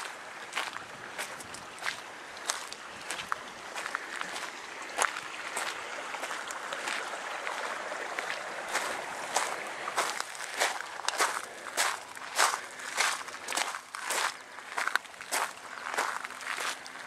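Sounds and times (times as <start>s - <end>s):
footsteps on gravel: 0.0s - 17.0s.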